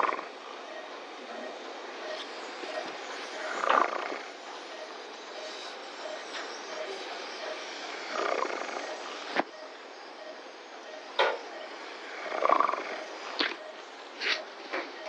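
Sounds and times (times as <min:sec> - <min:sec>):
steady hiss with rapid pulsing: 0:00.0 - 0:15.0.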